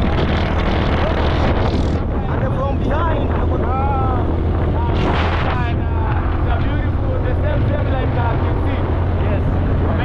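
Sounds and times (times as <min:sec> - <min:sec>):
motorcycle engine running: 0:00.0 - 0:10.0
wind rumbling on microphone: 0:00.0 - 0:10.0.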